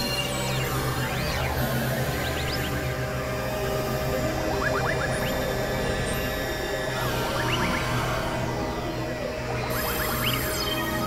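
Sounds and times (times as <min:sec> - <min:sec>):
layered experimental music: 0:00.0 - 0:11.0
low drone tones: 0:00.0 - 0:11.0.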